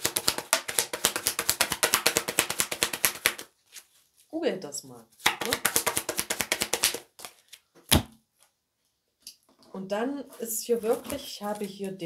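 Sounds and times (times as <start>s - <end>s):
cards being shuffled: 0.0s - 4.0s, 5.2s - 8.5s.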